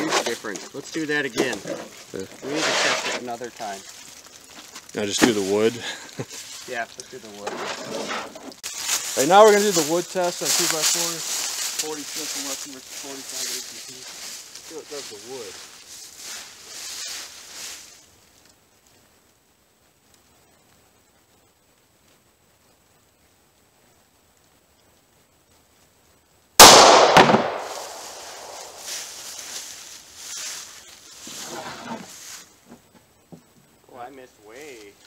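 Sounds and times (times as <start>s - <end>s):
pistol shot with echo: 26.6s - 28.8s.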